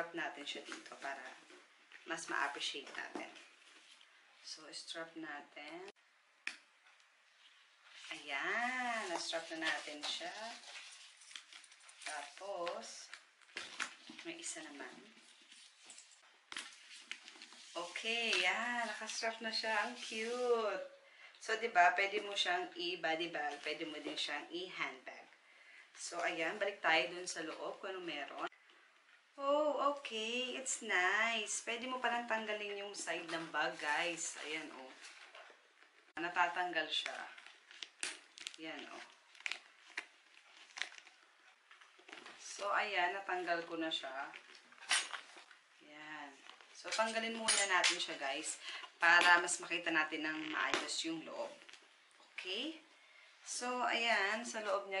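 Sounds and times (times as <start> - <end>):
stiff bag material rustling: 8.0 - 19.2, 36.8 - 45.7
handbag handling: 44.0 - 45.7.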